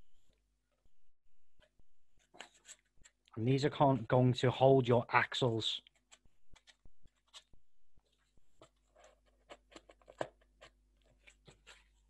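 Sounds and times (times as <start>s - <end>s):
cardboard taps and scraping: 8.6s - 12.0s.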